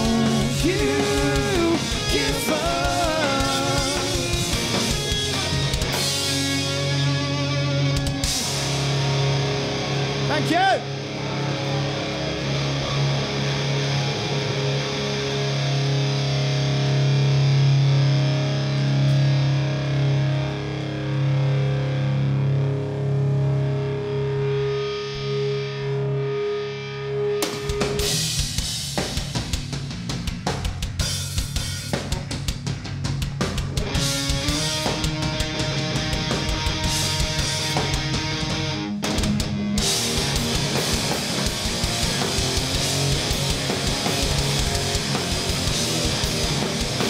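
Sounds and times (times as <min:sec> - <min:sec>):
distorted electric guitars drone: 0:00.0 - 0:47.0.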